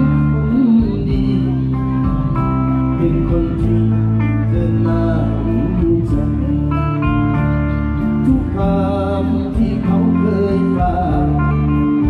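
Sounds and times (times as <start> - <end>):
electric guitar: 0.0 - 12.0
low bass line: 0.0 - 12.0.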